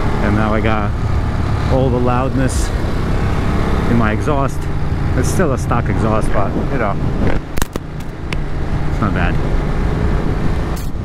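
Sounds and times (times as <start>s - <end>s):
motorcycle engine low rumble: 0.0s - 11.0s
sharp clicks: 7.3s - 8.4s.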